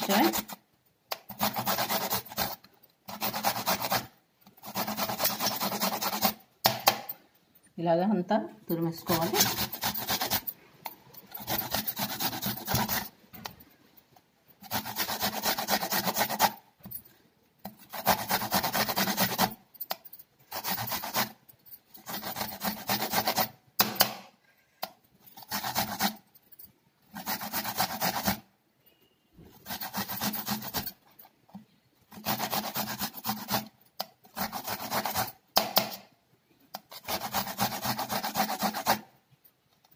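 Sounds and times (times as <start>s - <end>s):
ginger rasping on hand grater: 0.0s - 0.6s, 1.3s - 6.4s, 9.1s - 10.4s, 11.3s - 13.1s, 14.6s - 16.6s, 17.8s - 19.5s, 20.5s - 21.4s, 22.0s - 23.5s, 25.4s - 26.2s, 27.1s - 28.4s, 29.5s - 30.9s, 32.1s - 33.7s, 36.8s - 39.0s.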